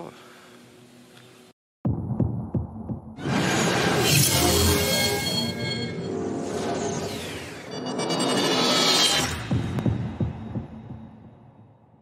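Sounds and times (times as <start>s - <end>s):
deep pulsing bass hits: 1.8s - 3.2s.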